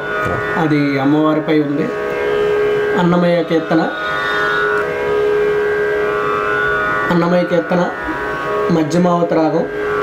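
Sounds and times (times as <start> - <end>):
drone instrument: 0.0 - 10.0.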